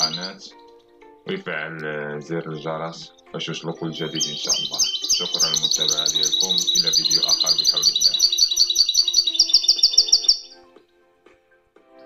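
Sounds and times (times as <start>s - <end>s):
finch singing: 0.0s - 10.8s
faint music: 0.0s - 12.0s.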